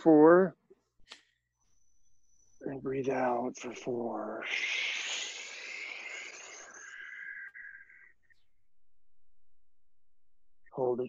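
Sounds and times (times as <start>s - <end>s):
slow exhale through mouth: 4.4s - 8.0s.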